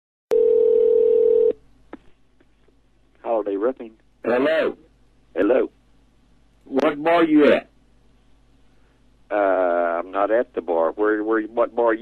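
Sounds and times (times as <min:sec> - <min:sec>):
telephone ring tone: 0:00.3 - 0:01.6.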